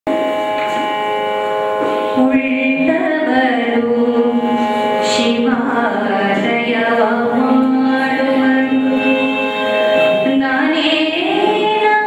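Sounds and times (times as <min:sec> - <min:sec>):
instrumental drone of held tones: 0:00.1 - 0:12.0.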